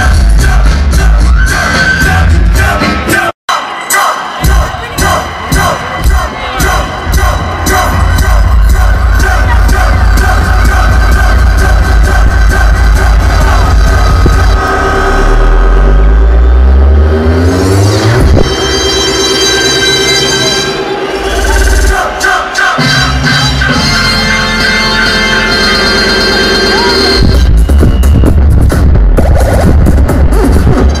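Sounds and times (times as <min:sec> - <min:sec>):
electronic dance music: 0:00.0 - 0:31.0
rising bass sweep: 0:06.7 - 0:22.2.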